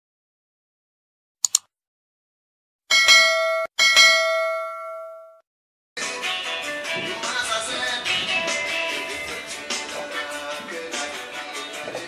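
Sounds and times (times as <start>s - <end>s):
bell chime: 2.9s - 5.4s.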